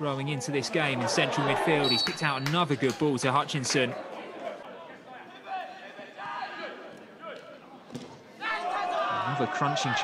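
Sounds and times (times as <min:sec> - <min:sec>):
faint stadium noise: 0:00.0 - 0:10.0.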